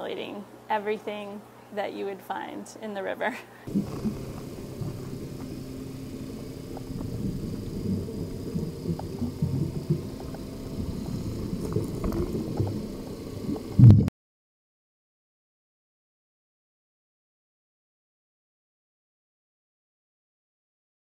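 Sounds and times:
faint ticks: 3.7s - 13.1s
underwater water rumbling: 3.7s - 14.1s.

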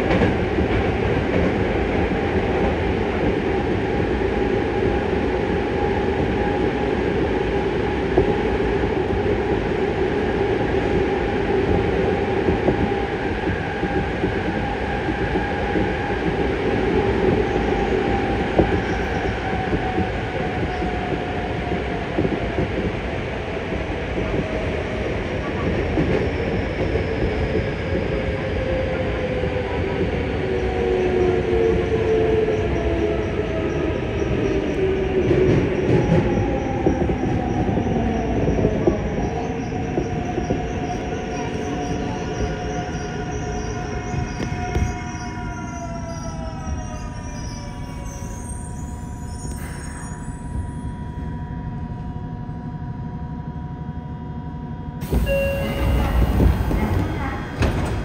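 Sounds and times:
wheels rumbling on rail: 0.0s - 58.0s.

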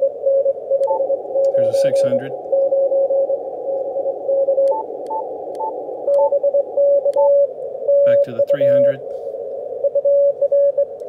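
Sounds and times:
faint clicks with higher blips: 0.0s - 11.0s
radio band hiss: 1.1s - 2.6s, 7.7s - 9.8s
morse code tone: 4.3s - 8.9s, 9.8s - 11.0s.

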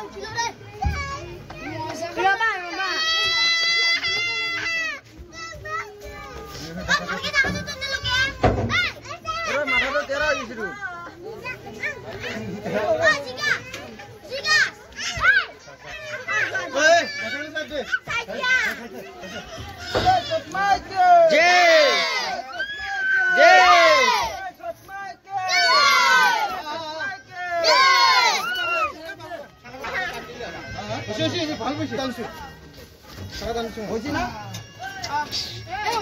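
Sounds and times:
voices talking and shouting: 0.0s - 36.0s.

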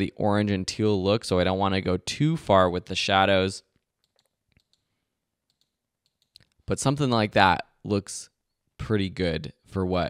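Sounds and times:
computer mouse clicks: 4.0s - 4.9s, 5.5s - 6.7s.

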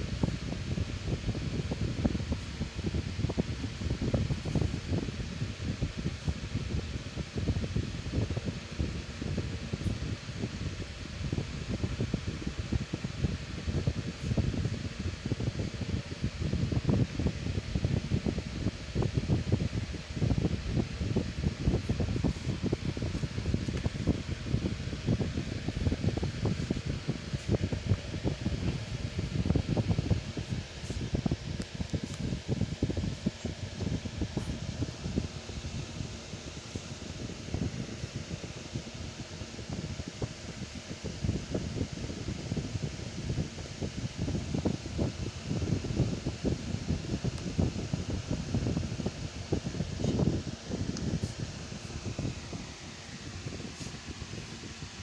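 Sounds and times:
fan blowing air on microphone: 0.0s - 55.0s.

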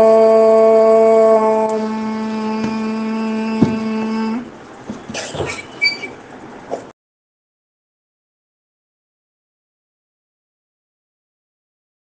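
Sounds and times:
steady pitched chant drone: 0.0s - 4.6s.

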